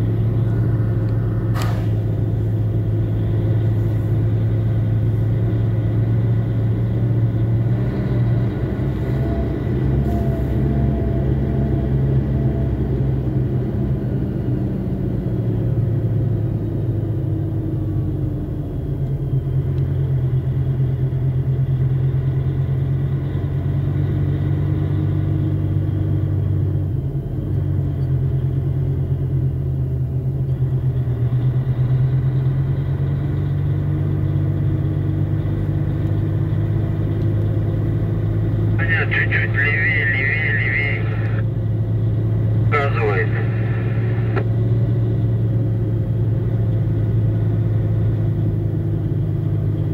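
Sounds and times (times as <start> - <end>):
vehicle engine and road noise: 0.0 - 49.9.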